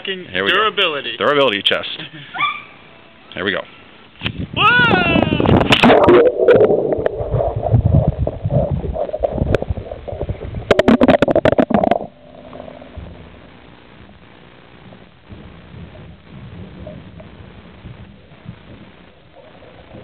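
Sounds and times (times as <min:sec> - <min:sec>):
low underwater hum: 0:05.4 - 0:20.0
muffled churning water and bubbles: 0:05.5 - 0:13.7.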